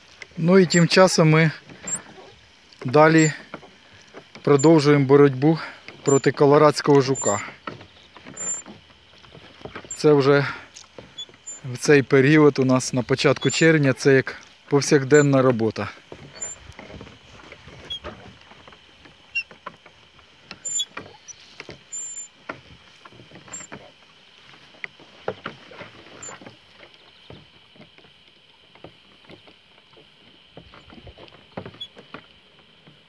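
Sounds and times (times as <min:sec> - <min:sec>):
faint steady hiss: 0:00.0 - 0:33.0.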